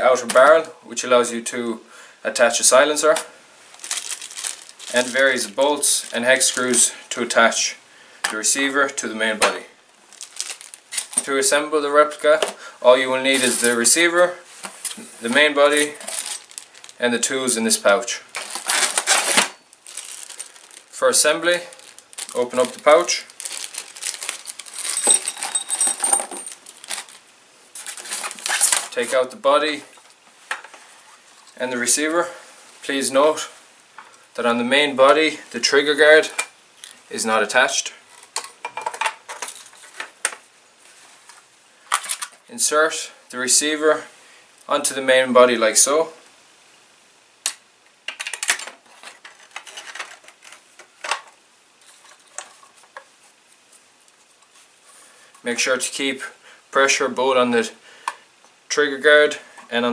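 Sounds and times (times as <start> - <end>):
metal bolts and screws clinking: 13.3 - 14.0, 15.3 - 16.7, 18.4 - 20.7, 24.3 - 27.1.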